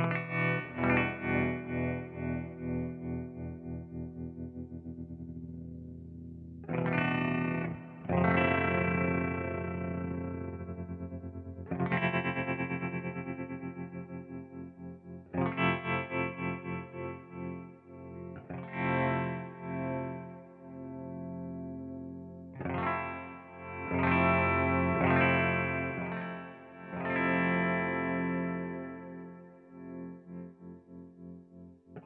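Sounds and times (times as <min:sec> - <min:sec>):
electric guitar chords with tremolo: 0:00.0 - 0:32.0.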